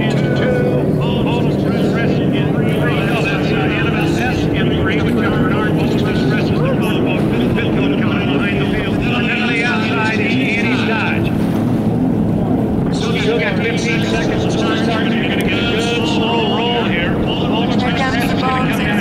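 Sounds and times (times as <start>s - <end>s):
racing boat engines droning: 0.0s - 19.0s.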